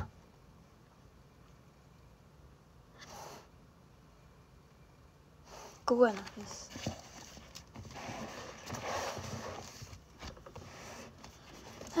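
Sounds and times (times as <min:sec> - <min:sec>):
paper rustling: 0:06.1 - 0:12.0.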